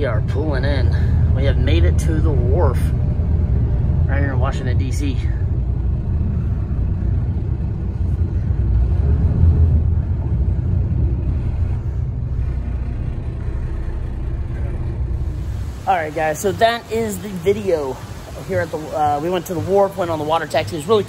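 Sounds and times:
boat engine rumble: 0.0 - 21.0.

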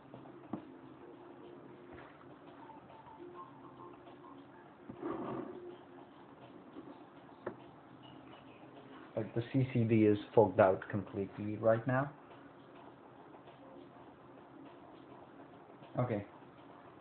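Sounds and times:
small cooling fan humming: 0.0 - 17.0.

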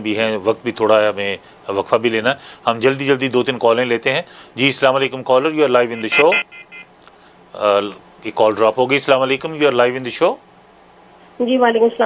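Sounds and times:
man speaking: 5.4 - 6.5, 7.6 - 10.4
telephone line beeps: 5.8 - 12.0.

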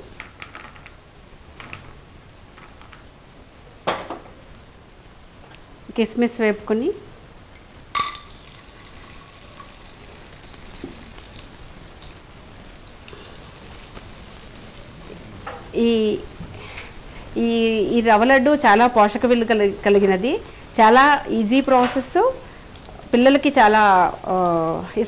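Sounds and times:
raisins sizzling in hot fat: 7.9 - 25.0.

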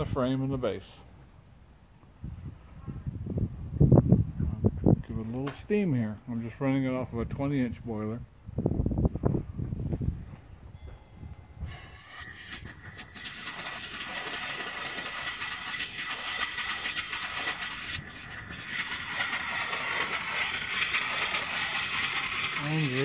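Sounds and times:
steam engine hissing and beating: 11.6 - 23.0.

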